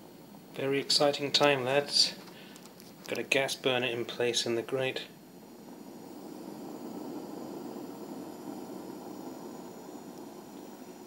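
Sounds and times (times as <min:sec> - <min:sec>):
gas burner rushing: 0:00.0 - 0:11.0.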